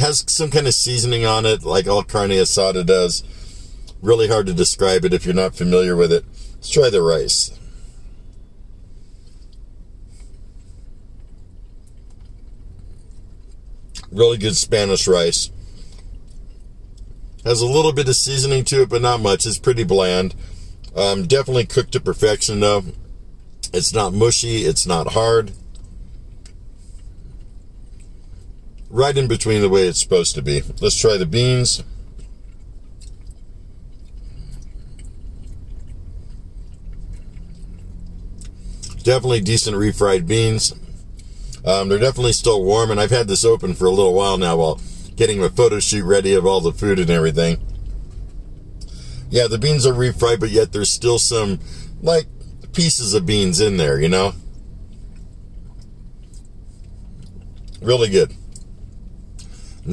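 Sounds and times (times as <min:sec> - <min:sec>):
car cabin hum: 0:00.0 - 0:59.9
faint chewing: 0:07.6 - 0:17.4, 0:24.6 - 0:29.5, 0:30.6 - 0:41.6, 0:43.7 - 0:49.3, 0:54.3 - 0:59.9.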